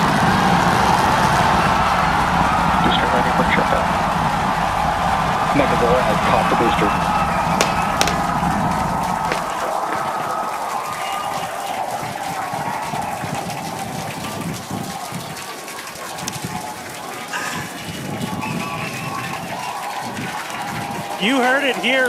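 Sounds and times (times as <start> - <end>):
crowd cheering and clapping: 0.0 - 22.0.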